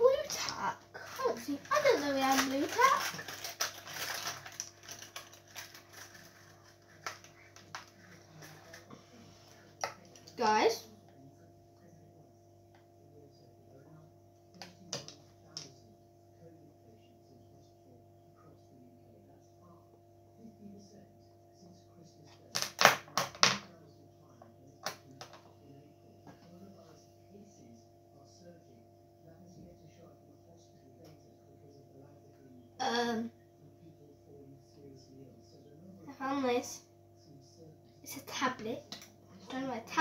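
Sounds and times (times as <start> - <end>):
faint steady hum: 0.0 - 40.0
small objects clicking and knocking: 1.7 - 8.8, 22.5 - 23.6.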